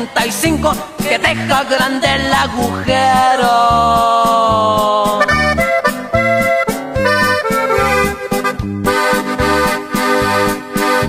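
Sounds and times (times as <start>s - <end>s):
steady bass beat: 0.0s - 11.0s
accordion melody: 4.7s - 11.0s.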